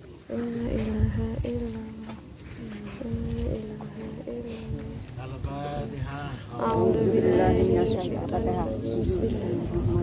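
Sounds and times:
man chanting recitation: 2.6s - 10.0s.

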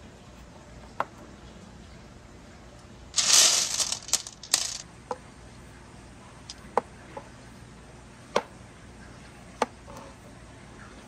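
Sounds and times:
marbles clattering together: 3.2s - 4.8s.

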